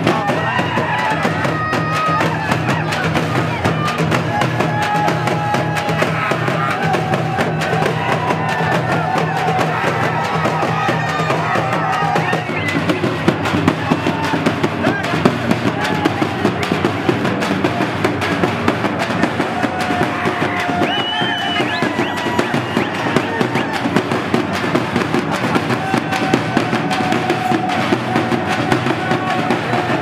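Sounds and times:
crowd voices calling: 0.0s - 30.0s
frame drums beaten fast: 0.0s - 30.0s.

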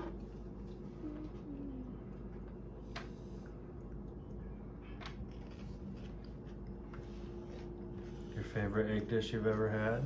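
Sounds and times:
low room hum: 0.0s - 10.0s
chewing: 5.0s - 8.1s.

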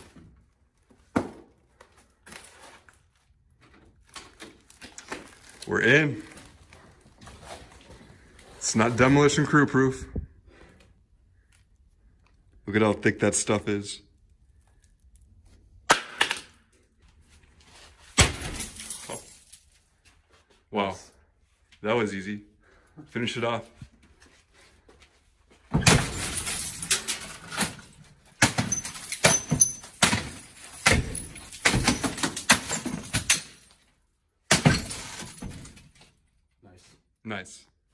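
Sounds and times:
sledgehammer striking glass: 18.2s - 19.5s, 25.7s - 33.7s, 34.5s - 35.9s
glass shattering and tinkling: 18.2s - 19.7s, 25.8s - 33.8s, 34.5s - 36.1s
glass crunching and crackling: 25.8s - 33.9s.

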